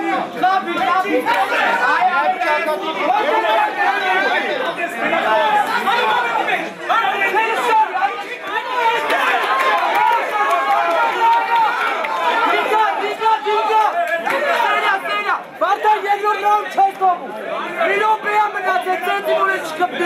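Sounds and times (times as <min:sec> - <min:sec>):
crowd chatter and shouting: 0:00.0 - 0:20.0.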